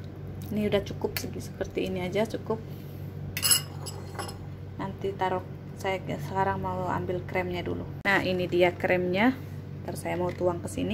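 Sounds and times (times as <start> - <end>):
kitchenware clinking: 3.4 - 4.4.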